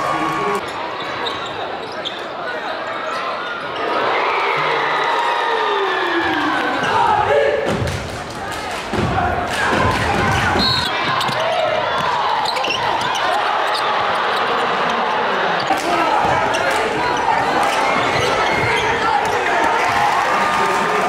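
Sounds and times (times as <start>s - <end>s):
din of crowd voices: 0.0s - 21.0s.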